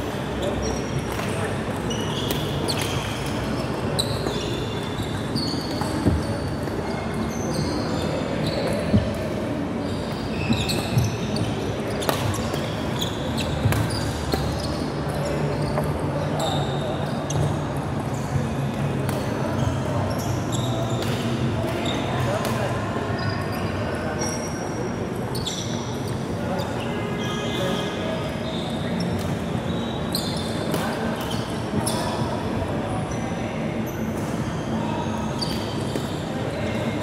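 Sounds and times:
court shoes squeaking: 0:00.0 - 0:37.0.

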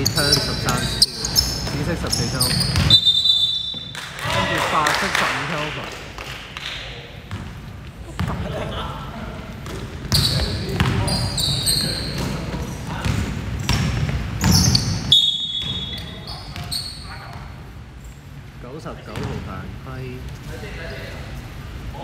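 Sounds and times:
basketball bouncing: 0:00.0 - 0:03.1, 0:07.3 - 0:08.5, 0:09.6 - 0:11.1, 0:11.8 - 0:15.9
sneakers squeaking on floor: 0:00.0 - 0:04.0, 0:07.3 - 0:08.7, 0:09.6 - 0:18.2
players' voices echoing: 0:00.0 - 0:22.0.

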